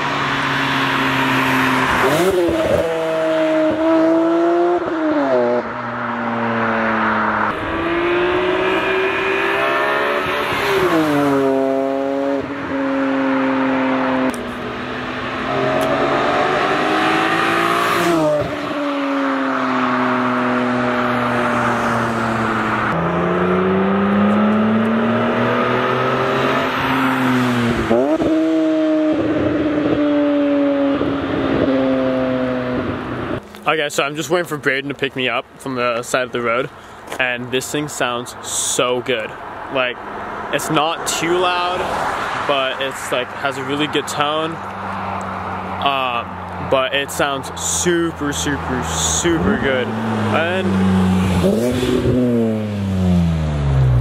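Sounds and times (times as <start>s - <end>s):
car exhaust revving past: 0.0s - 33.4s, 44.6s - 54.0s.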